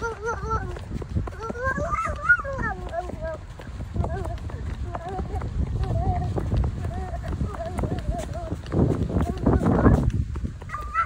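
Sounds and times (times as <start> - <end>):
footsteps running on concrete: 0.0 - 11.0
toddler squealing: 10.7 - 11.0.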